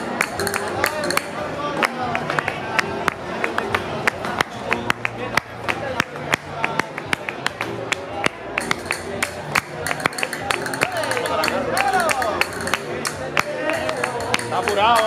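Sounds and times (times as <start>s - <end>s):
flamenco music: 0.0s - 15.0s.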